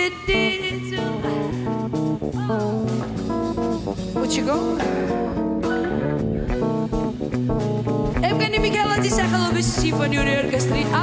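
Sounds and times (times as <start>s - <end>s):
electric bass guitar: 0.0s - 11.0s
plucked guitar: 0.0s - 11.0s.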